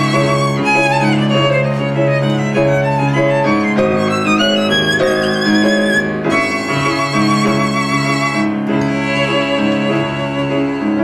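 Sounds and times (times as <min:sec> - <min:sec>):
grand piano accompaniment: 0:00.0 - 0:11.0
violin melody: 0:00.0 - 0:11.0.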